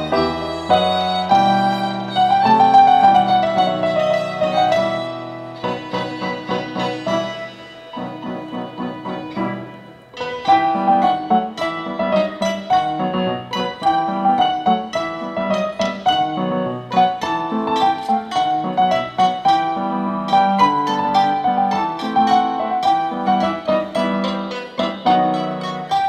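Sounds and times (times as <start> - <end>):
instrumental ensemble playing: 0.0 - 26.0.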